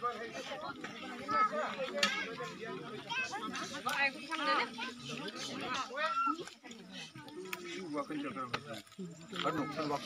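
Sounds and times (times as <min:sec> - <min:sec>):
people and children talking: 0:00.0 - 0:10.0.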